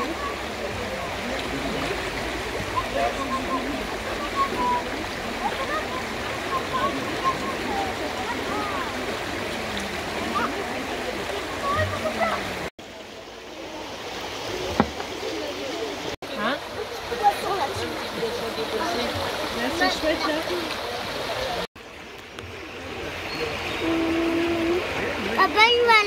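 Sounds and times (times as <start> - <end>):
river flowing over stones: 0.0 - 26.0.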